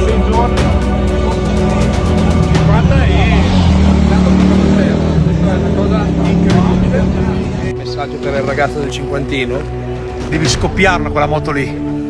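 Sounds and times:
motorcycle engine running: 0:00.0 - 0:07.7
people talking: 0:00.0 - 0:09.6.

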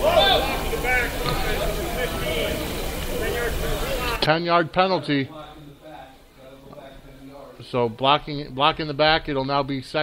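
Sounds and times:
chatter of voices: 0:00.0 - 0:07.9.

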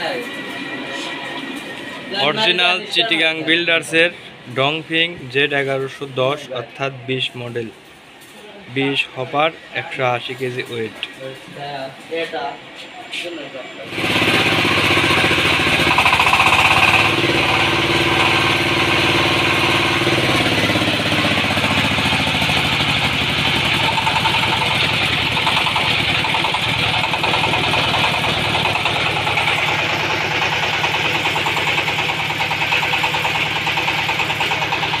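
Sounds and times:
diesel engine running loudly: 0:13.8 - 0:35.0.

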